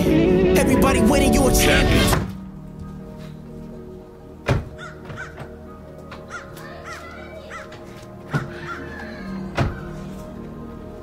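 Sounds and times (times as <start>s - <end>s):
background music: 0.0s - 11.0s
crow cawing: 4.8s - 5.6s, 6.2s - 10.1s.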